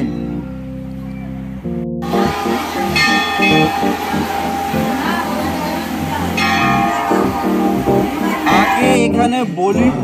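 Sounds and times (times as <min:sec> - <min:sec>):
music: 0:00.0 - 0:10.0
temple bells ringing: 0:02.0 - 0:09.1.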